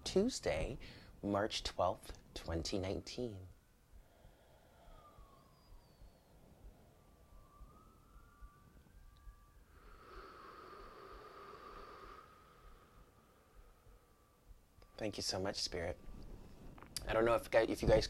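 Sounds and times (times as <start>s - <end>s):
distant siren wailing: 2.4s - 16.8s.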